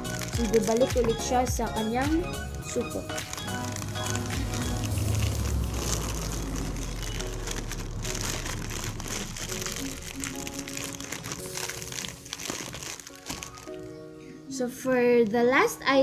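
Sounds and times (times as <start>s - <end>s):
plastic bag crinkling: 0.0s - 14.1s
background music: 0.0s - 16.0s.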